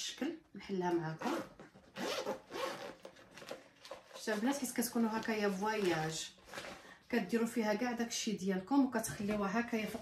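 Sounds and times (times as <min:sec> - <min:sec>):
zipper pulled open: 0:01.2 - 0:03.2.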